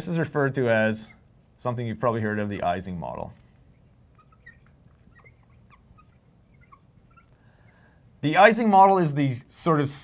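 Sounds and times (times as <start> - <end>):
marker squeaking on glass: 3.4 - 7.9.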